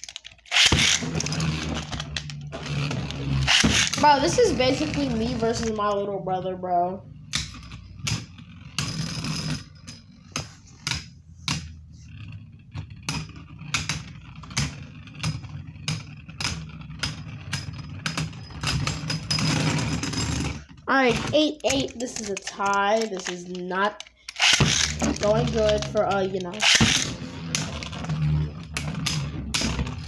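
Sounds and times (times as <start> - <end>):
scraping rattle: 0.0 - 30.0
spinning tops whirring: 0.0 - 30.0
spinning tops clacking: 14.6 - 30.0.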